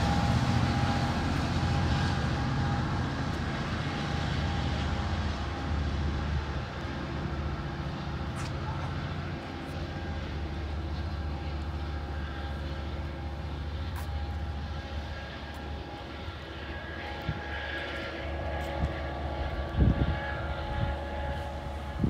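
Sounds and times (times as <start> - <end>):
diesel locomotive engine drone: 0.0 - 22.0.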